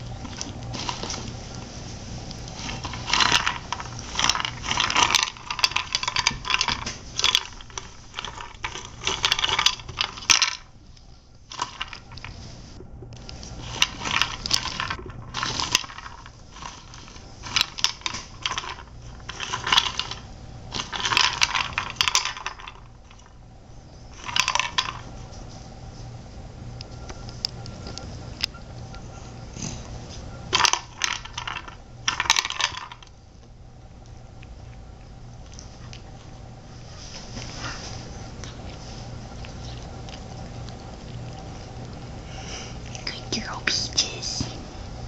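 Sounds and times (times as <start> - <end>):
dry cat food rattling in toy: 2.5 - 10.8, 11.5 - 12.5, 13.4 - 23.4, 24.1 - 25.3, 30.5 - 33.1.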